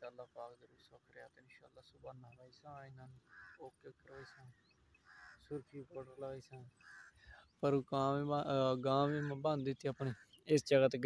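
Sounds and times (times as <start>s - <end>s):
harsh bird calls: 0.0s - 11.0s.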